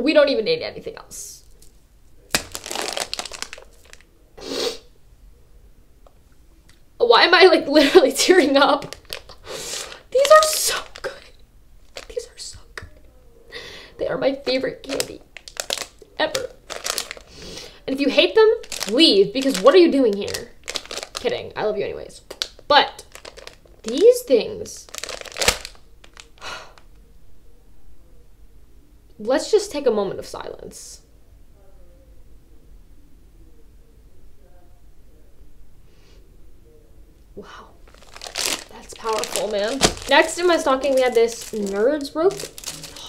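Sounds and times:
plastic bag crinkling: 1.4s - 4.1s, 8.2s - 12.3s, 14.8s - 17.8s, 18.5s - 21.5s, 22.2s - 24.2s, 24.8s - 26.5s, 37.8s - 43.0s.

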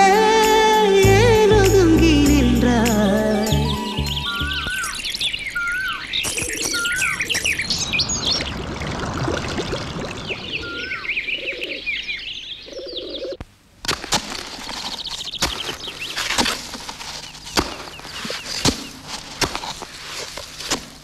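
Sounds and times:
birds chirping: 2.8s - 13.4s
rising and falling whistle: 3.2s - 5.0s.

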